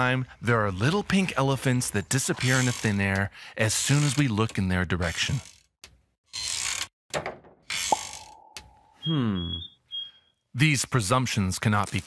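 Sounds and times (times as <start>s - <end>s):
brief pitched blip: 7.9s - 9.7s.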